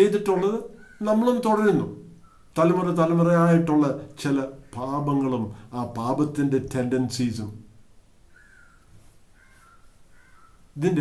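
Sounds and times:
man speaking: 0.0s - 7.7s, 10.8s - 11.0s
faint bird calls: 0.7s - 1.4s, 2.0s - 2.9s, 8.2s - 10.9s.

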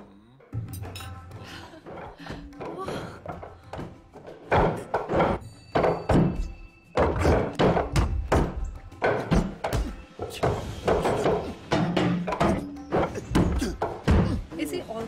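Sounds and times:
film music: 0.0s - 15.0s
hands knocking wooden dummy: 1.9s - 14.4s.

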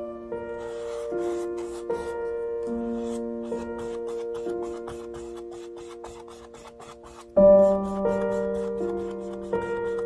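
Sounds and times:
soft background music: 0.0s - 10.0s
paintbrush scrubbing on canvas: 0.5s - 10.0s.

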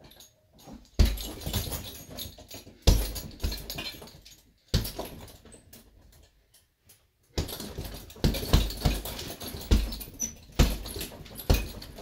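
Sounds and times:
chain jingling and rattling: 0.0s - 6.2s, 7.4s - 12.0s
punches on heavy punching bag: 1.0s - 2.0s, 2.8s - 3.9s, 4.7s - 5.2s, 7.4s - 12.0s.

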